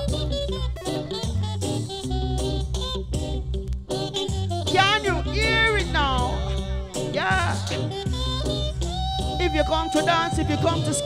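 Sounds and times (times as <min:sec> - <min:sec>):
reggae song with bassline: 0:00.0 - 0:11.0.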